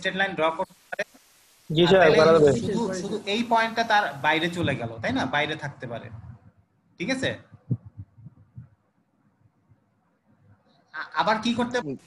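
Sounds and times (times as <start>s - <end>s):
person talking: 1.7s - 3.2s, 3.8s - 6.4s, 7.0s - 8.6s.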